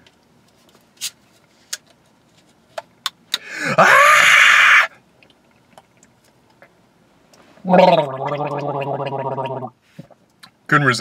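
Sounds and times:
man gargling water: 7.6s - 9.8s.

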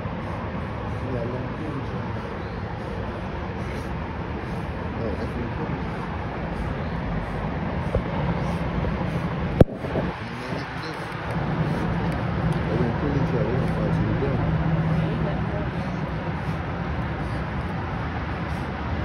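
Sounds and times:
outdoor background noise: 0.0s - 19.0s.

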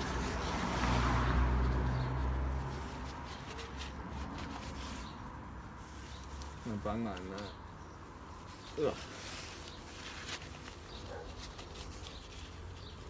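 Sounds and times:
vehicle engine humming: 0.0s - 8.4s
paper towel rustling: 8.3s - 13.0s.

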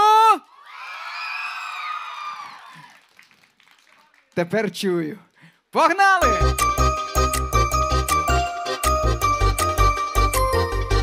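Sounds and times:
audience shouting and cheering: 0.0s - 3.0s
man speaking into microphone: 4.4s - 6.5s.

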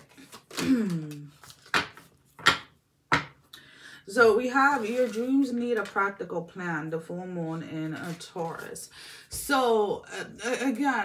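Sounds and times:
cards being handled: 0.0s - 3.2s.

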